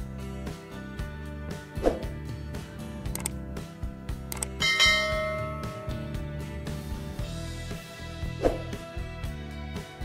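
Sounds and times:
background music: 0.0 - 10.0
mouse clicks: 3.1 - 3.3, 4.3 - 4.6
ringing notification chime: 4.6 - 6.2.

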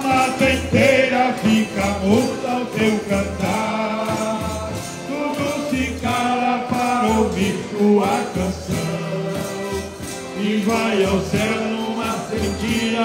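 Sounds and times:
men singing: 0.0 - 13.0
piano accordion playing: 0.0 - 13.0.

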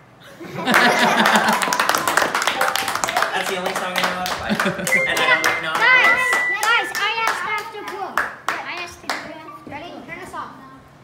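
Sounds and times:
children clapping: 0.6 - 9.4
pipe organ note: 2.4 - 3.8, 4.9 - 6.9.

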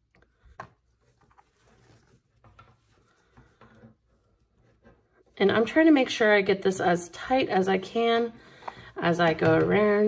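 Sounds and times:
ribbon rustling: 0.0 - 5.5.

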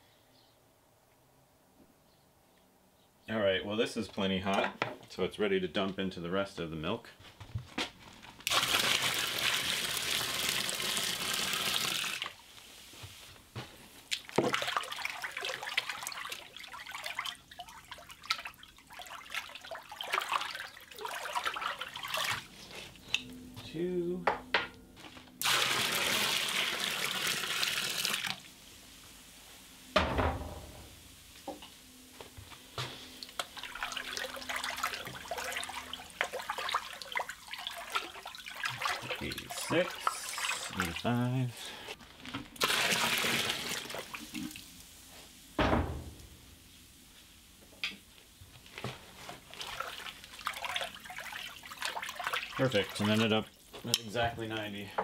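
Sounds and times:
milk splashing pour: 8.5 - 12.4, 14.2 - 22.5, 25.4 - 28.5, 33.2 - 41.0, 42.6 - 44.7, 49.4 - 53.7
loud thump: 30.0 - 31.0, 45.6 - 46.4.

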